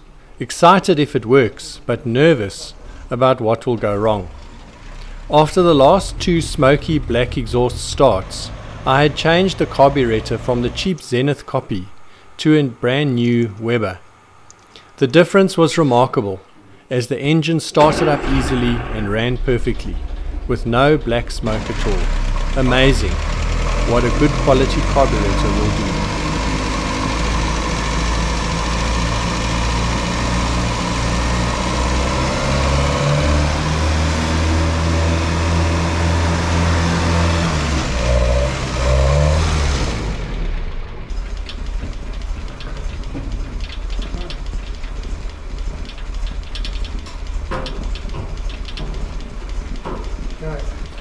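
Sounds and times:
car engine running: 2.6 - 10.9, 17.8 - 51.0
scattered clicks and knocks: 41.1 - 51.0.

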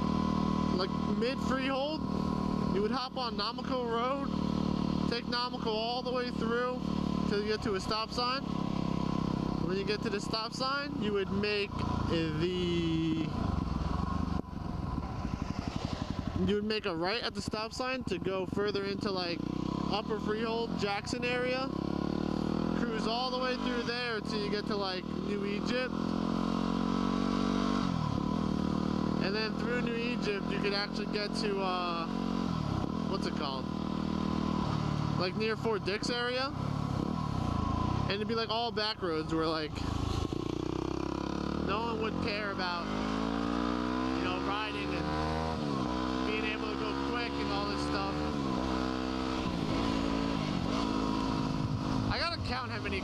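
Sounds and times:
motorcycle engine running: 0.0 - 53.0.

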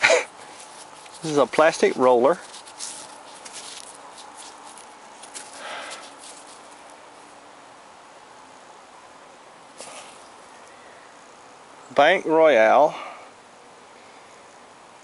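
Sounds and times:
faint rustling: 0.0 - 7.4.

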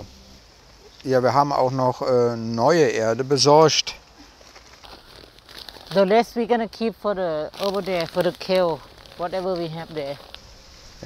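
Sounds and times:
soil rustling: 0.0 - 11.0
plastic bag crinkling: 4.0 - 11.0.

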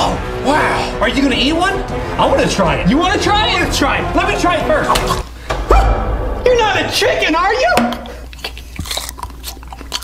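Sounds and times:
person chewing chili pepper: 8.1 - 10.0.

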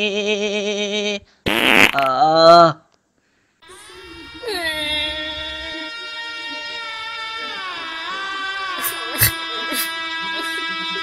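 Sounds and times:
buzzing pitched tone: 3.6 - 7.3
rasping noisy burst: 3.6 - 9.9.

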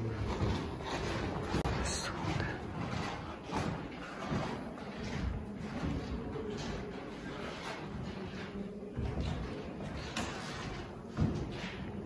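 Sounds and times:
indistinct background voices: 0.0 - 3.2
soft knocks and handling noises: 0.2 - 12.0.

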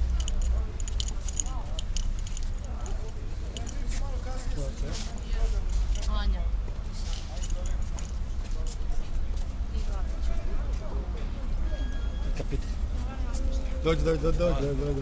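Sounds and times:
people talking quietly: 0.0 - 15.0.

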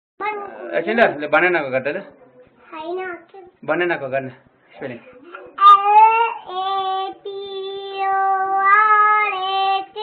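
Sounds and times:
child making vocal sounds: 0.2 - 0.8, 5.2 - 10.0.

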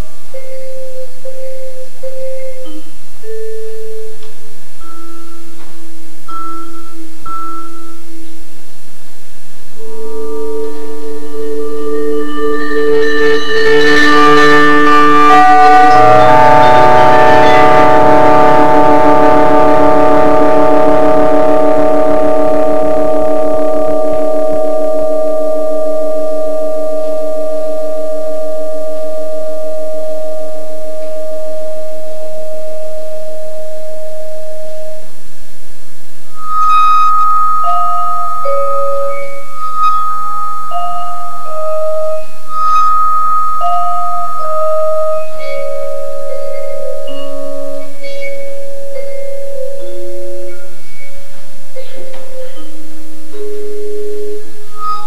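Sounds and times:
slow vibraphone melody: 0.0 - 5.7, 6.3 - 8.3, 9.8 - 33.3, 36.4 - 55.0
vibraphone chord ringing: 10.4 - 22.0.

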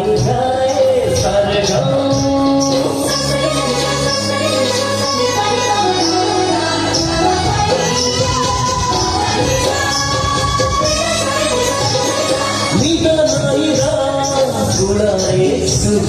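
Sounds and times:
high percussion beat: 0.0 - 16.0
person singing over loudspeakers: 0.0 - 16.0.

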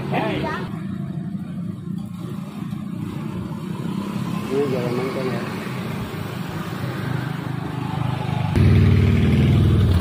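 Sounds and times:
motor scooters running: 0.0 - 10.0.

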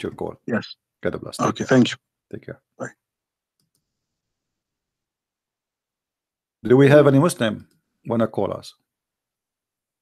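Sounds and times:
faint clicks: 3.5 - 3.9.

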